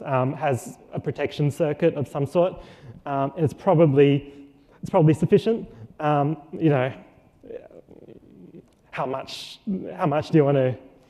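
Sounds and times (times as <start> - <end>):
presenter speaking: 0.0 - 11.0.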